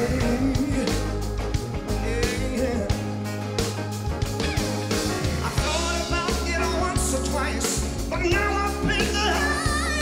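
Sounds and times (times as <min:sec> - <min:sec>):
person singing: 0:00.0 - 0:01.2, 0:05.4 - 0:10.0
drum beat: 0:00.0 - 0:10.0
live rock band: 0:00.0 - 0:10.0.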